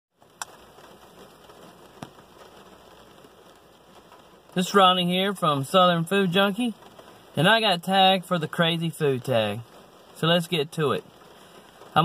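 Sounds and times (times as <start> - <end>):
rain on car roof: 0.1 - 12.0.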